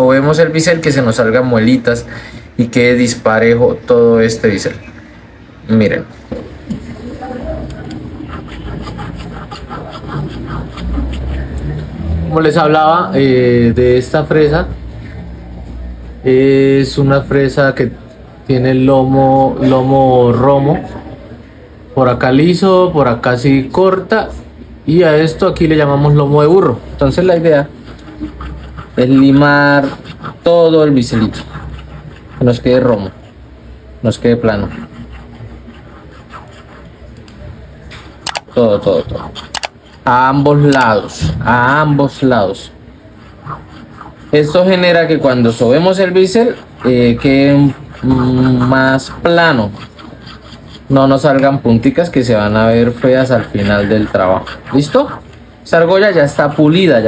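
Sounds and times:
hand file scraping metal: 0:07.8 - 0:12.2, 0:27.0 - 0:33.6, 0:34.2 - 0:37.4, 0:38.0 - 0:57.0.

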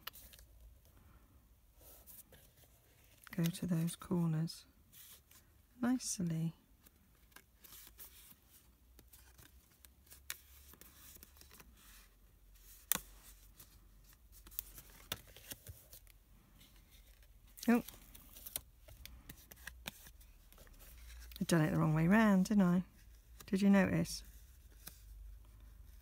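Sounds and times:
cardstock rustling: 0:07.2 - 0:22.3.

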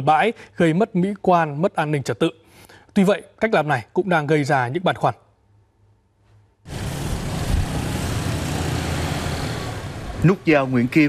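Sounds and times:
motorbike and scooter traffic: 0:06.7 - 0:11.0.

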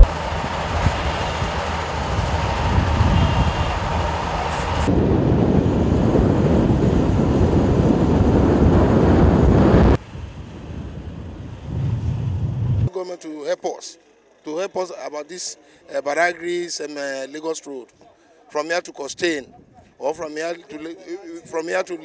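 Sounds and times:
heavy vehicle engine rumble: 0:00.0 - 0:12.9
wind on microphone: 0:00.0 - 0:12.9.

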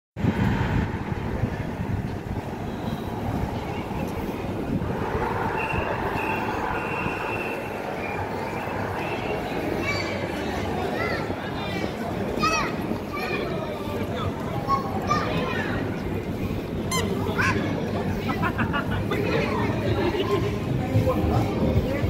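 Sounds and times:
steady city rumble: 0:00.2 - 0:22.0
voices of passers-by: 0:00.2 - 0:22.0.

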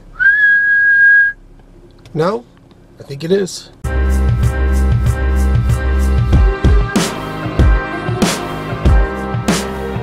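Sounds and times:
man whistling a held note: 0:00.2 - 0:01.4.

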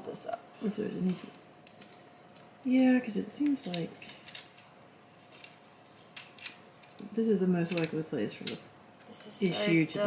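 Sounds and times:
plastic keyboard membrane crinkling: 0:01.3 - 0:08.5.

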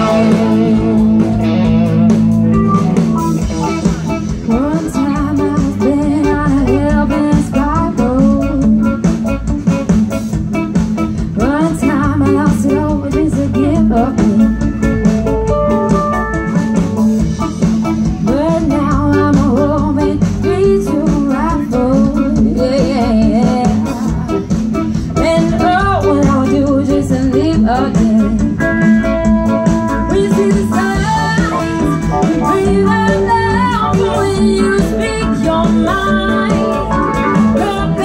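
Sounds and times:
woman singing lead: 0:00.0 - 0:10.0, 0:11.0 - 0:16.7, 0:17.8 - 0:38.0
bass guitar: 0:00.0 - 0:38.0
drum kit: 0:00.0 - 0:38.0
electric guitars: 0:00.0 - 0:38.0
keyboard: 0:00.0 - 0:38.0.

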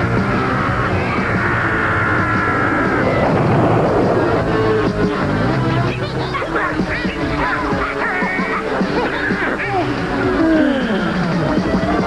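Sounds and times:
rock music: 0:00.0 - 0:12.0
burst of noise: 0:00.4 - 0:05.8.

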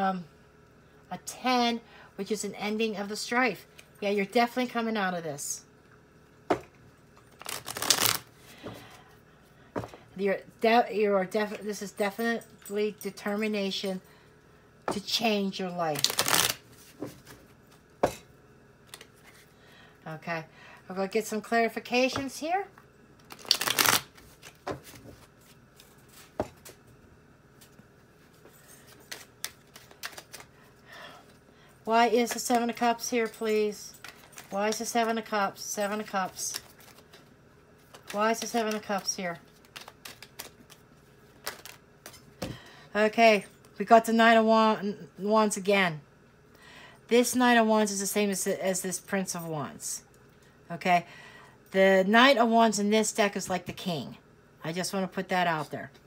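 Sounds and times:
cards shuffling: 0:07.3 - 0:08.2, 0:16.0 - 0:17.4, 0:23.2 - 0:26.8, 0:28.8 - 0:30.5, 0:36.0 - 0:37.2, 0:37.8 - 0:42.2.

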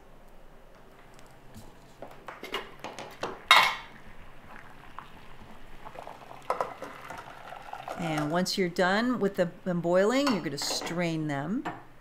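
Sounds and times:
cookware clinking and knocking: 0:02.5 - 0:03.9, 0:10.2 - 0:11.0
water poured into strainer: 0:04.5 - 0:08.3.

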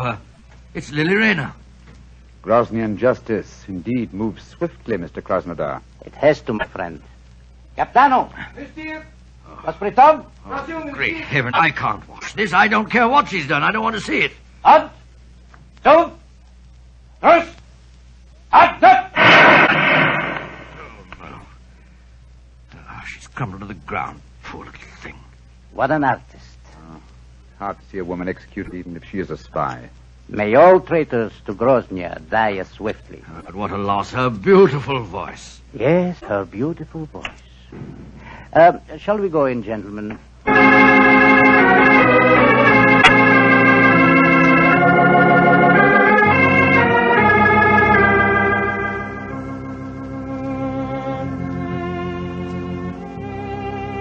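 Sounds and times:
rifle volley: 0:19.2 - 0:21.0
sustained organ chords: 0:19.2 - 0:21.2, 0:40.4 - 0:54.0.

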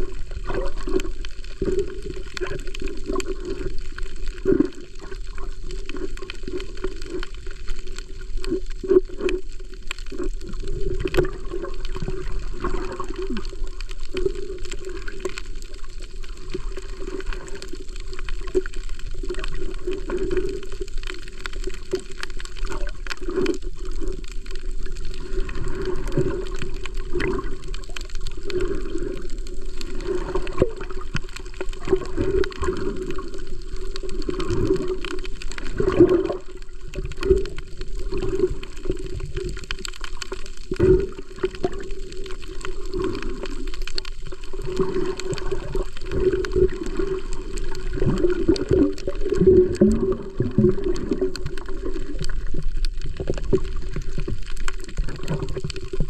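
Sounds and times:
water gurgling and sloshing: 0:00.0 - 0:56.0.

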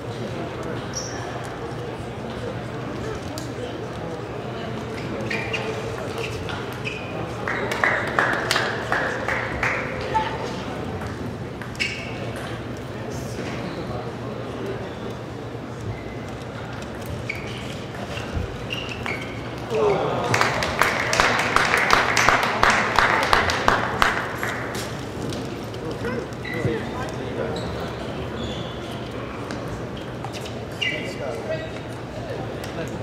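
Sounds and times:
murmur of voices: 0:00.0 - 0:33.0
short high squeaks: 0:05.0 - 0:07.2, 0:11.8 - 0:12.3, 0:17.2 - 0:19.6, 0:27.5 - 0:29.0, 0:30.0 - 0:31.7.

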